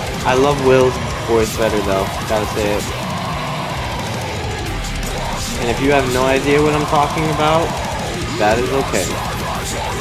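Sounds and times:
death metal song: 0:00.0 - 0:10.0.

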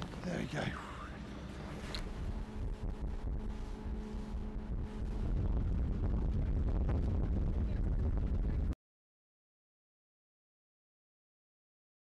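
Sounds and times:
boat engine rumbling: 0:00.0 - 0:08.8
wind on microphone: 0:01.5 - 0:08.8.

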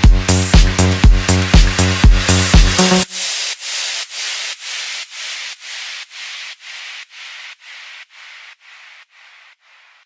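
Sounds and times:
pulsing hissing synth noise: 0:00.0 - 0:10.0.

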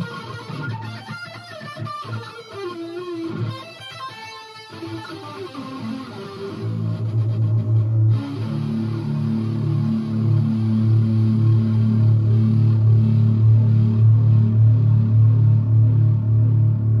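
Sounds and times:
distorted electric guitar: 0:00.0 - 0:17.0.

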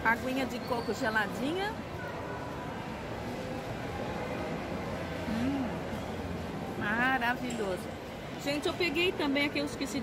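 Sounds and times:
food court room hum: 0:00.0 - 0:10.0.

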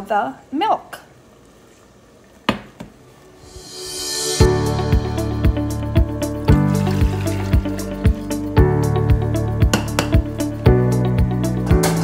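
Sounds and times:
background music with steady beat: 0:03.3 - 0:12.0.

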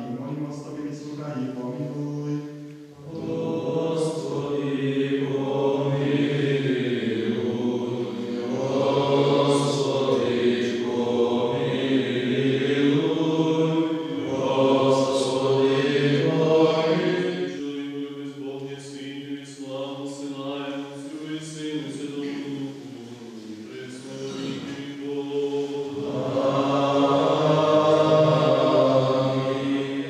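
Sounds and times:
men singing liturgical chant: 0:03.0 - 0:30.0.

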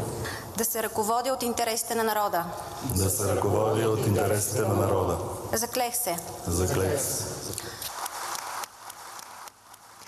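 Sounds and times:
applause in a large hall: 0:07.4 - 0:10.0
scattered claps: 0:07.8 - 0:10.0.

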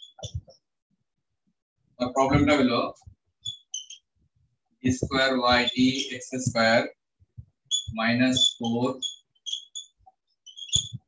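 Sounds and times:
marker squeaking on whiteboard: 0:00.0 - 0:00.7, 0:02.1 - 0:04.1, 0:04.9 - 0:06.9, 0:07.7 - 0:11.0.

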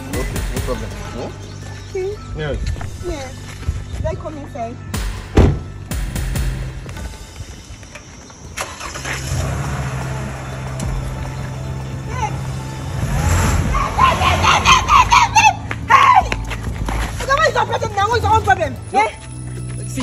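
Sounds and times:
background music: 0:00.0 - 0:20.0
car engine starting and running: 0:08.3 - 0:15.4
raised voices: 0:13.6 - 0:16.3.

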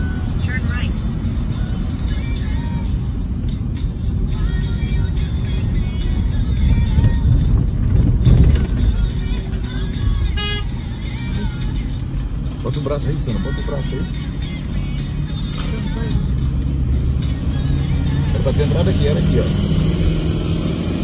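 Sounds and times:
background music: 0:00.0 - 0:21.0
car road and engine rumble: 0:00.0 - 0:21.0.

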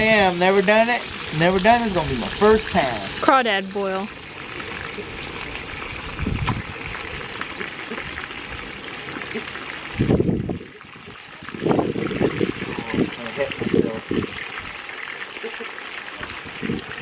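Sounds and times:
fish deep-frying in hot oil: 0:00.0 - 0:17.0.

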